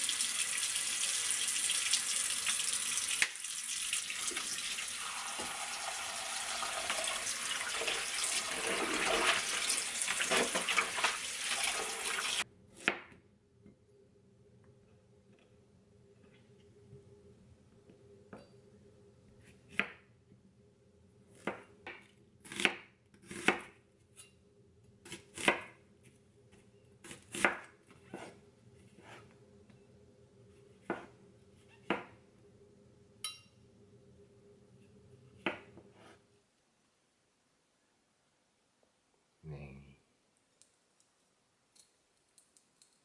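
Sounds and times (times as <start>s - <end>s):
faint steady hum: 12.5s - 21.4s
knife chopping on cutting board: 22.4s - 23.7s, 27.0s - 28.4s, 30.8s - 31.1s.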